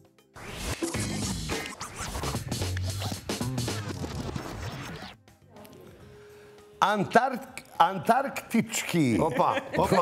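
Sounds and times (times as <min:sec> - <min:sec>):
turntable scratching: 0:00.4 - 0:05.2.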